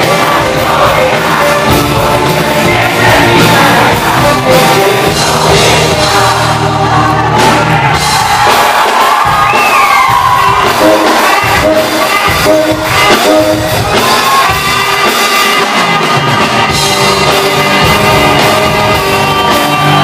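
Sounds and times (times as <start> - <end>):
rock band playing live: 0.0 - 20.0.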